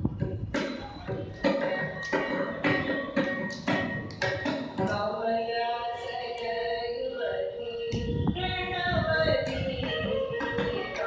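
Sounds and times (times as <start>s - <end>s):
drum strokes: 0.0s - 5.0s.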